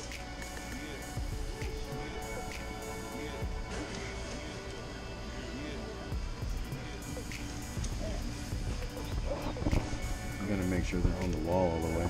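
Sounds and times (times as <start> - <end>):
television music and voices: 0.0 - 12.0.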